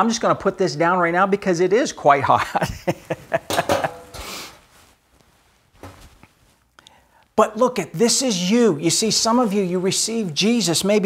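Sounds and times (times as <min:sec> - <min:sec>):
man's breathy laugh: 0:02.5 - 0:04.5.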